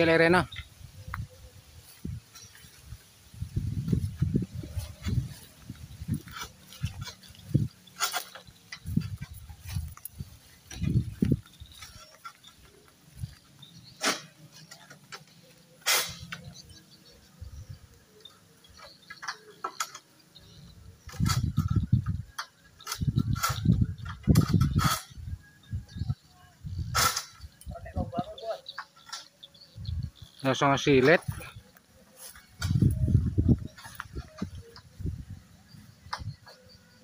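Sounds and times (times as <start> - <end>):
sharp cracks of fronds: 5.1 - 13.3, 14.0 - 16.5, 26.9 - 27.7.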